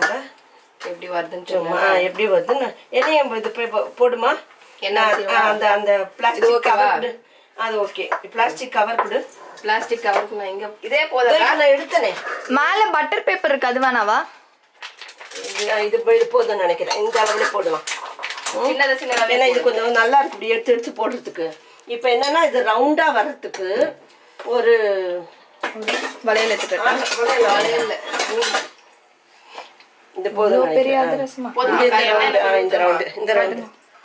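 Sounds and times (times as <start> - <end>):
metal utensils and pans clattering: 14.9 - 20.1, 25.6 - 28.8.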